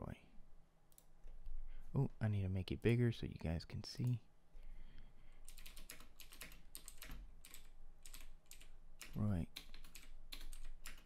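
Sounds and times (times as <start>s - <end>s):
typing on computer keyboard: 5.5s - 11.0s.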